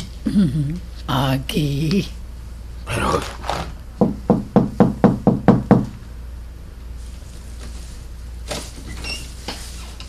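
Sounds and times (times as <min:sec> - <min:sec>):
knocking on a door: 0:04.0 - 0:05.9.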